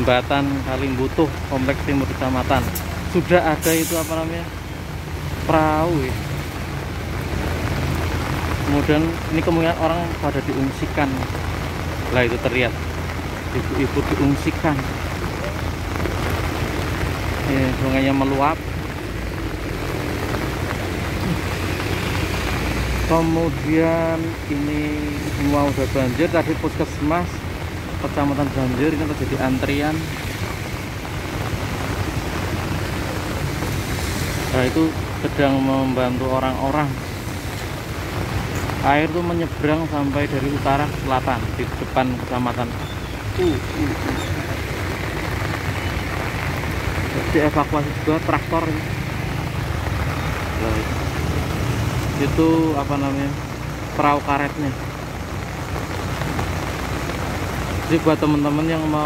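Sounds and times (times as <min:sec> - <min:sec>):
heavy rain hissing: 0:00.0 - 0:59.0
traffic on wet road: 0:00.0 - 0:59.0.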